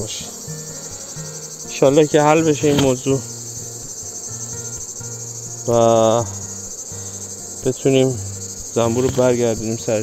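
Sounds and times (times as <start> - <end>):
man speaking: 0.0 - 0.4, 1.7 - 3.3, 5.7 - 6.4, 7.6 - 10.0
insect chorus chirring: 0.0 - 10.0.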